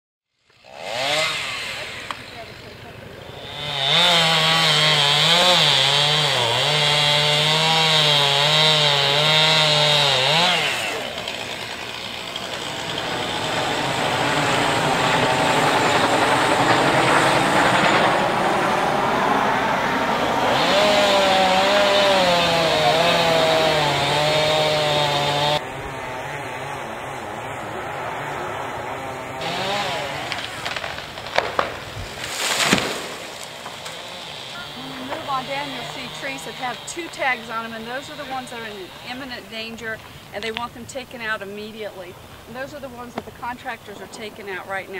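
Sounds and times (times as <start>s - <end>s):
chainsaw cutting wood: 0.4s - 44.9s
chainsaw engine running: 0.4s - 44.9s.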